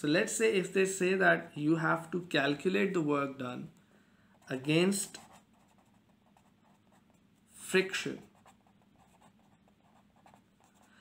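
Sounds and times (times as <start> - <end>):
marker scratching on paper: 4.4 - 10.9.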